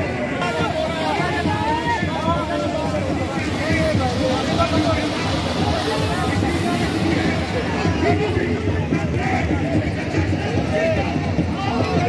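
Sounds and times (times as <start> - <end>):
crowd of men talking: 0.0 - 12.0.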